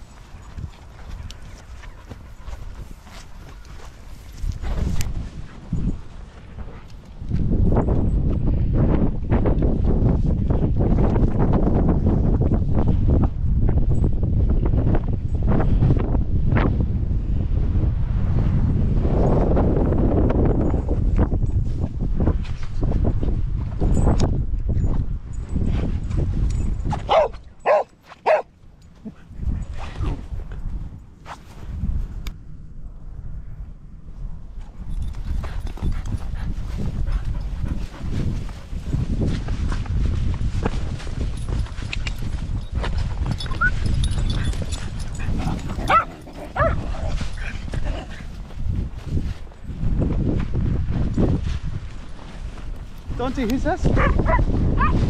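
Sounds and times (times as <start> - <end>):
footsteps: 0.0 - 7.5, 34.6 - 55.0
wind rumbling on microphone: 0.0 - 55.0
dog barking: 27.1 - 28.5, 45.9 - 46.9, 53.9 - 55.0.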